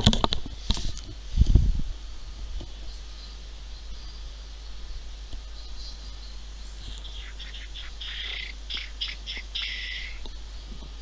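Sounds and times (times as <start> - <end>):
bird chirping: 2.6 - 10.9.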